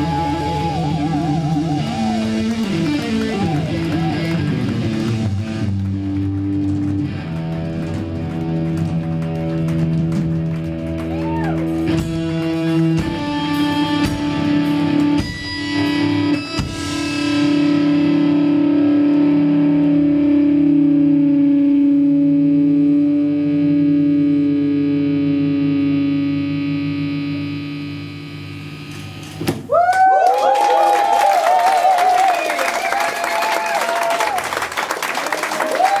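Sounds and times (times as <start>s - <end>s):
electric guitar bending high notes: 0.0s - 29.4s
live rock band chord ringing: 0.3s - 11.0s, 11.6s - 29.4s.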